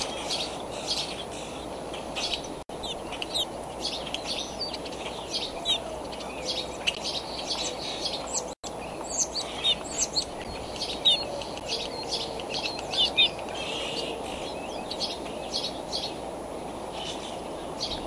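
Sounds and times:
small birds chirping: 0:00.0 - 0:18.0
steady background hiss: 0:00.0 - 0:18.0.

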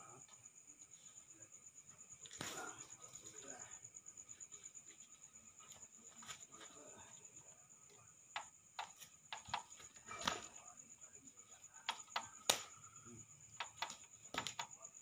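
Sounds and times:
insects trilling: 0:00.0 - 0:15.0
sharp slaps and stamps: 0:08.4 - 0:10.5, 0:11.8 - 0:12.8, 0:13.6 - 0:14.8.

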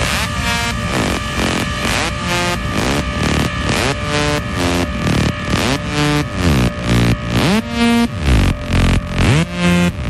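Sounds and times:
pulsing electronic beat: 0:00.0 - 0:10.0
synth sweeping upward: 0:00.0 - 0:10.0.

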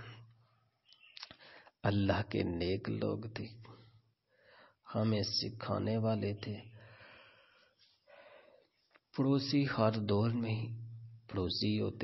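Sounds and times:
man speaking: 0:01.8 - 0:03.8, 0:04.9 - 0:06.8, 0:09.1 - 0:12.0.

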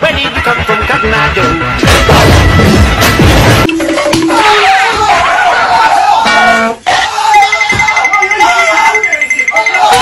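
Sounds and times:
music: 0:00.0 - 0:06.6.

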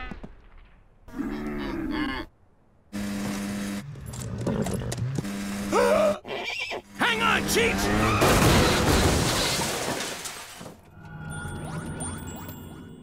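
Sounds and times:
horse whinnying: 0:05.7 - 0:07.0
snowmobile engine running: 0:06.9 - 0:08.0.

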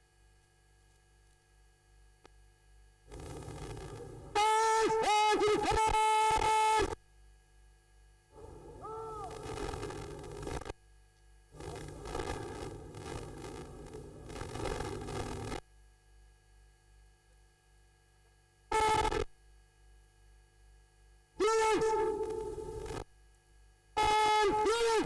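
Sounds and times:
open-air noise: 0:00.0 - 0:25.0
shouted command over loudspeaker: 0:04.4 - 0:07.0, 0:08.4 - 0:09.6, 0:21.4 - 0:22.8, 0:24.0 - 0:25.0.

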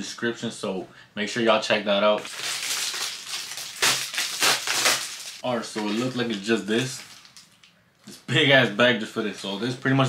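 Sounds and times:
plastic bag tearing: 0:02.2 - 0:07.7
plastic mailer bag crinkling: 0:02.2 - 0:07.7.

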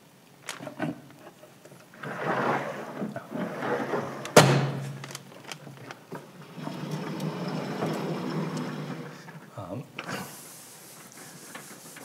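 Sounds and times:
eraser rubbing a blackboard: 0:10.1 - 0:12.0.

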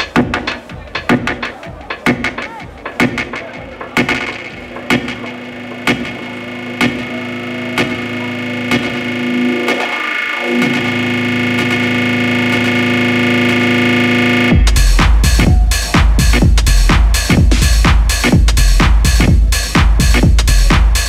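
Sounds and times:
filter sweep: 0:03.7 - 0:21.0
distorted synth chord: 0:04.1 - 0:16.4.

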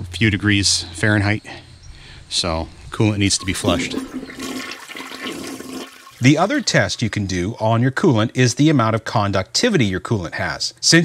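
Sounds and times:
toilet flushing: 0:03.4 - 0:07.4.

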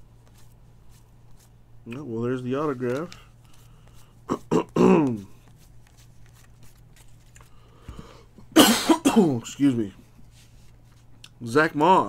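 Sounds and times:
handling trading cards: 0:00.0 - 0:08.1, 0:09.6 - 0:11.4
man coughing: 0:04.3 - 0:05.3, 0:08.4 - 0:09.5.

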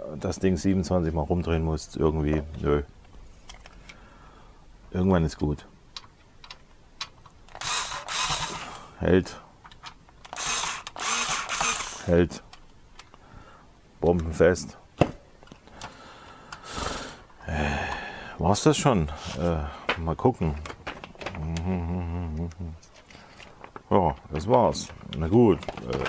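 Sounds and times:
low background hiss: 0:00.0 - 0:26.0
light handling clicks and rustles: 0:02.2 - 0:04.0, 0:05.9 - 0:07.6, 0:22.4 - 0:26.0.

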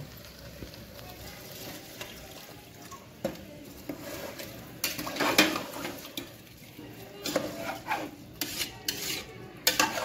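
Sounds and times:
metal ladle stirring rice: 0:01.5 - 0:10.0
ladle clinking against pot: 0:07.2 - 0:10.0.

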